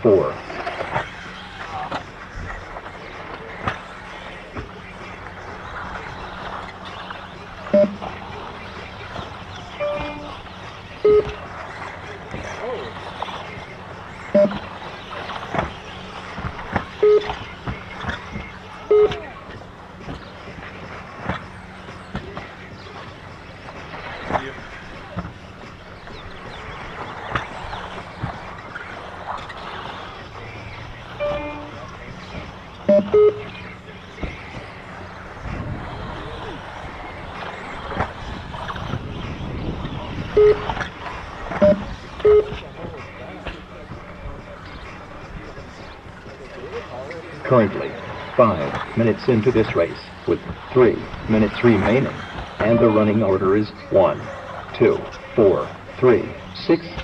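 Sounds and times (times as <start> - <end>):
short beeps: 7.7 - 8.0, 9.8 - 10.3, 11.0 - 11.4, 14.4 - 14.7, 17.0 - 17.4, 18.9 - 19.2, 31.2 - 31.8, 32.9 - 33.5, 40.4 - 40.8, 41.6 - 42.6, 52.7 - 53.0.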